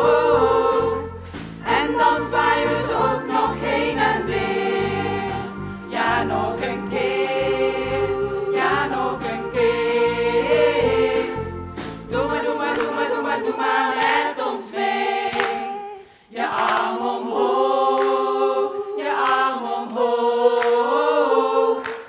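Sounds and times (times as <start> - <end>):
women singing in chorus: 0.0 - 11.5, 12.1 - 22.0.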